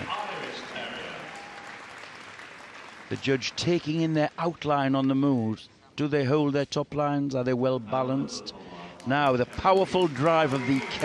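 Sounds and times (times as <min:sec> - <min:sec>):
audience applauding: 0:00.0 - 0:04.2, 0:09.0 - 0:11.0.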